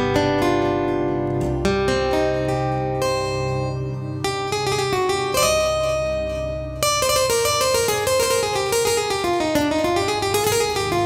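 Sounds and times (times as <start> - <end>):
plucked string keyboard notes: 0.0 - 11.0.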